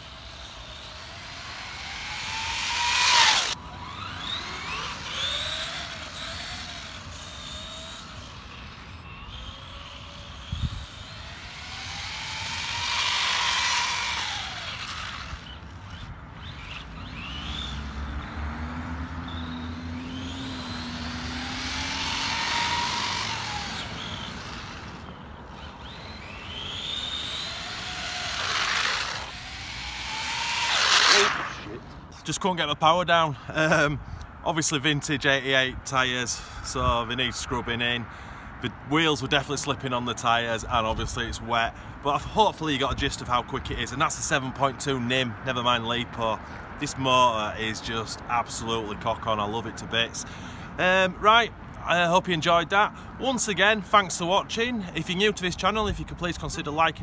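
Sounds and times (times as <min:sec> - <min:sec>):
electric motor whine: 0:00.0 - 0:32.0.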